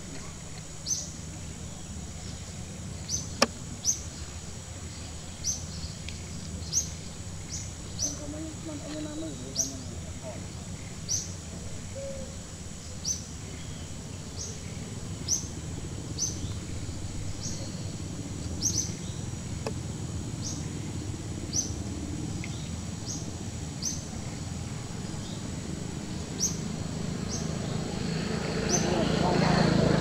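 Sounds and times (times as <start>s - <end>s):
low outdoor background: 0.0s - 30.0s.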